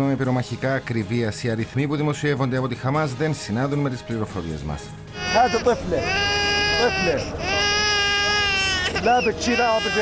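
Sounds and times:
infant crying: 0:05.1 - 0:10.0.

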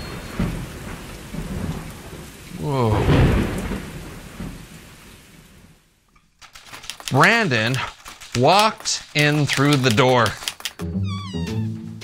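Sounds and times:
rolling thunder: 0:00.0 - 0:05.7
steady rain: 0:00.0 - 0:10.8.

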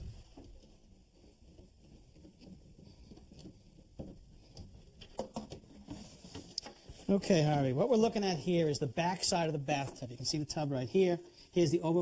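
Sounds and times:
light clicks and knocks: 0:00.2 - 0:07.0.

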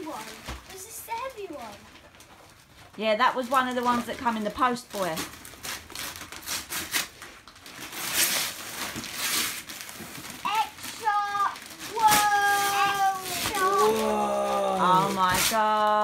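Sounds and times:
wrapping paper tearing: 0:00.0 - 0:16.0
child vocalizing: 0:10.5 - 0:15.1.

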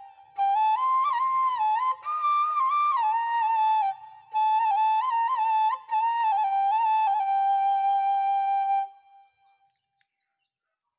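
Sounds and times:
bamboo flute long note: 0:00.0 - 0:09.4.

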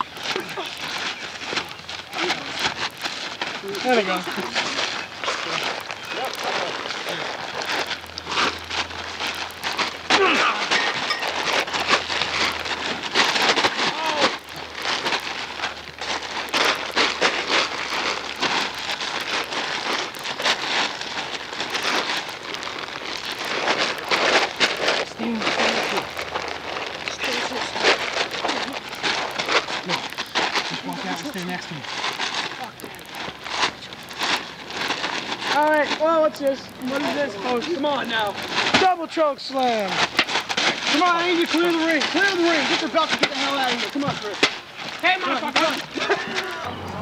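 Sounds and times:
plastic tarp crinkling: 0:00.0 - 0:47.0
people shouting: 0:09.8 - 0:12.4, 0:13.6 - 0:14.7, 0:45.2 - 0:47.0.

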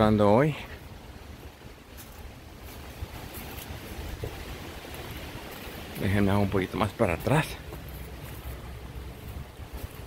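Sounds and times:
faint steady hiss: 0:00.0 - 0:10.0
wind buffeting microphone: 0:00.8 - 0:10.0.

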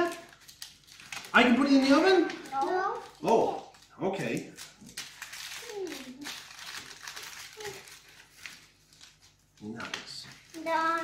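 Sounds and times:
hands rustling dough and plastic: 0:00.0 - 0:11.0.

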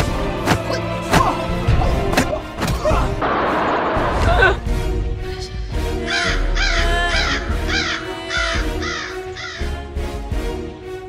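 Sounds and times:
dramatic music with low pulse: 0:00.0 - 0:11.0
crow cawing: 0:06.0 - 0:09.7.

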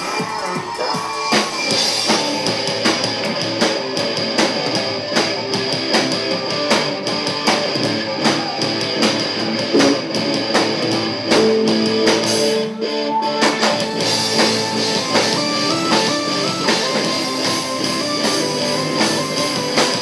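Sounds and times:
drum kit steady beat: 0:00.0 - 0:20.0
electric guitar: 0:00.0 - 0:20.0
keyboard: 0:00.0 - 0:20.0.

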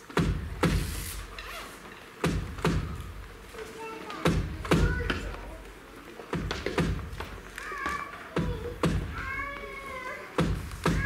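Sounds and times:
kick drum thumps: 0:00.1 - 0:00.9, 0:02.2 - 0:03.2, 0:04.2 - 0:05.3, 0:06.3 - 0:07.4, 0:08.4 - 0:09.4, 0:10.4 - 0:11.0.

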